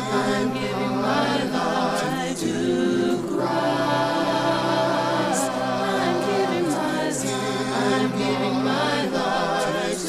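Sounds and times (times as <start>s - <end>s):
group singing a hymn: 0.0s - 10.0s.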